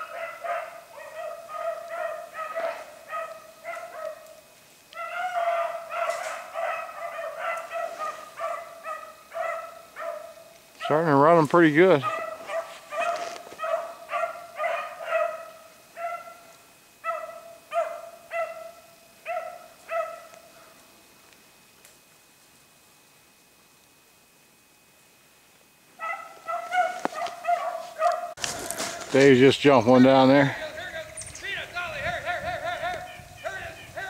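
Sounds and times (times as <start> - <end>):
hounds baying: 0.0 - 20.8, 26.0 - 34.0.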